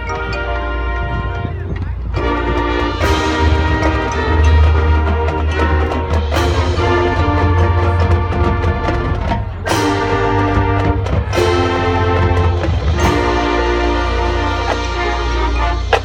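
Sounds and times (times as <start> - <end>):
marching band playing: 0.0 - 16.0.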